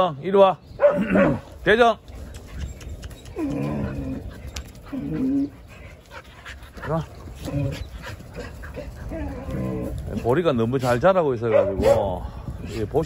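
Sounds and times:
dogs giving short vocal calls: 2.1 - 6.2.

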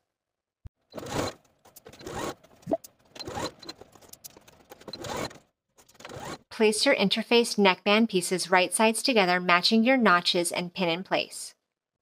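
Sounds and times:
electric sewing machine stitching: 0.9 - 2.4, 3.1 - 3.8, 4.8 - 5.4, 6.0 - 6.4.

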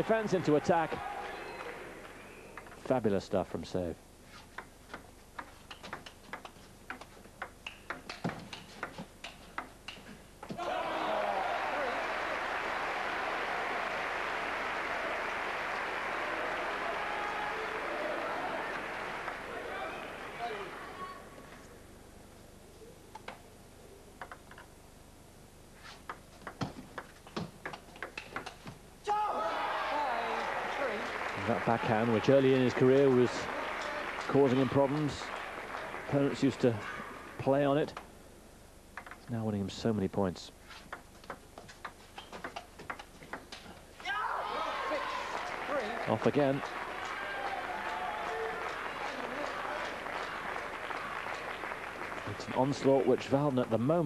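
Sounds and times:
crowd cheering: 0.0 - 2.3, 10.5 - 21.4, 29.0 - 37.6, 44.0 - 54.0
table tennis ball clicks: 2.6 - 2.8, 4.5 - 10.5, 24.2 - 24.7, 26.0 - 28.7, 39.0 - 39.3, 40.9 - 43.8.

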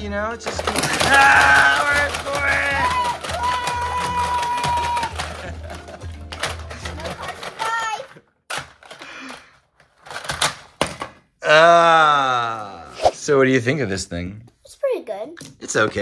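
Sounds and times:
plastic pieces clacking and knocking: 0.0 - 11.4
short vocal cry: 11.4 - 13.2.

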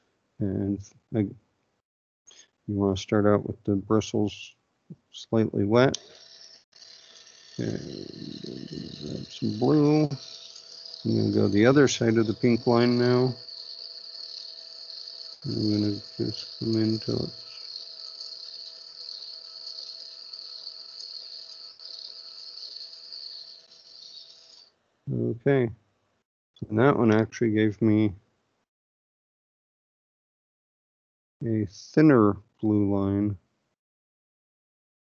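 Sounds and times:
man speaking: 0.4 - 1.4, 2.7 - 6.0, 7.6 - 10.2, 11.1 - 13.4, 15.5 - 17.5, 25.1 - 25.7, 26.6 - 28.2, 31.4 - 33.4
high-pitched motor whir: 5.9 - 24.7.

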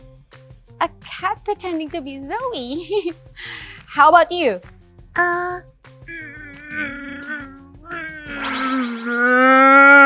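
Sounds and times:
light background music: 0.0 - 10.0
cow mooing: 6.1 - 8.5.

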